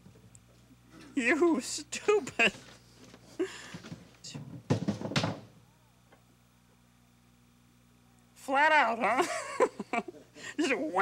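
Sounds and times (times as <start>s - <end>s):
faint steady hum: 0.0s - 11.0s
drum knocking when set down: 4.4s - 5.5s.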